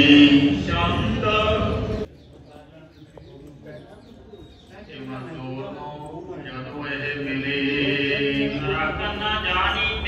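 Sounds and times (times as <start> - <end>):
faint indistinct voices: 0.0 - 10.0
birds calling: 1.7 - 6.2.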